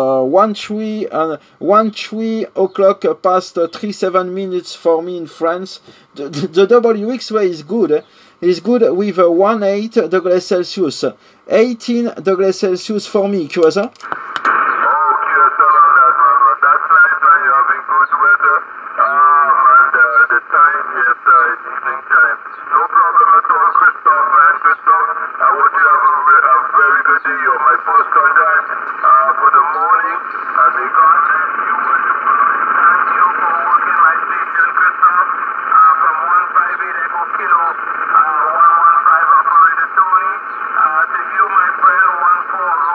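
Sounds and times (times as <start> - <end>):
radio band hiss: 0.0 - 42.9
thin radio speech: 9.4 - 42.9.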